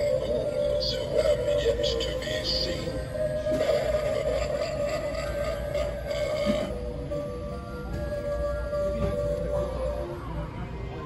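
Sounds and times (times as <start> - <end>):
music from animatronic prop: 0.0 - 11.0.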